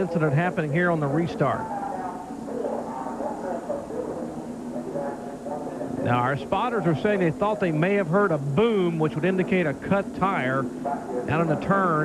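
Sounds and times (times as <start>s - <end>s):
faint indistinct voices: 0.0s - 12.0s
race broadcast audio: 0.0s - 12.0s.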